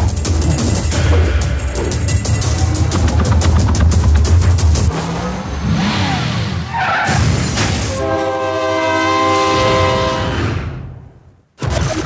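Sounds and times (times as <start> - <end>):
train horn chord: 7.9 - 10.3.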